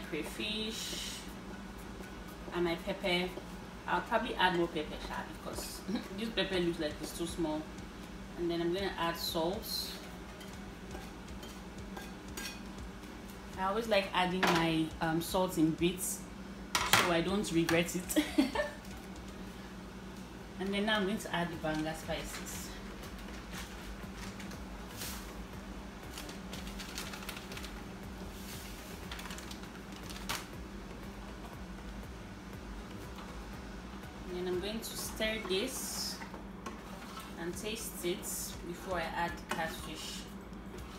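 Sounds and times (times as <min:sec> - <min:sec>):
steady low hum: 0:00.0 - 0:40.9.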